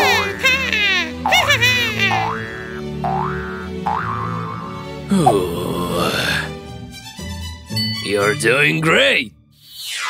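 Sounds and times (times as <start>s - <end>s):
background music: 0.0s - 9.6s
cartoon boing effects: 1.2s - 4.7s.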